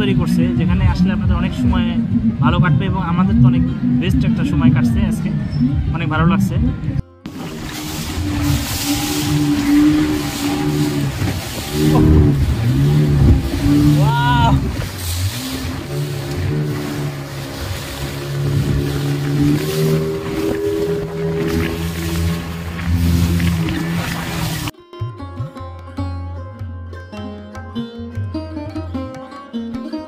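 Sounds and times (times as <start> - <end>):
speedboat motor: 0.0 - 24.7
wind: 0.0 - 26.0
water spray rushing: 7.3 - 24.7.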